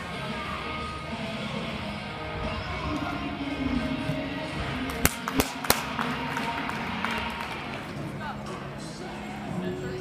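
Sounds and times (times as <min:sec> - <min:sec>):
background music: 0:00.0 - 0:10.0
sharp hand claps: 0:04.9 - 0:07.6.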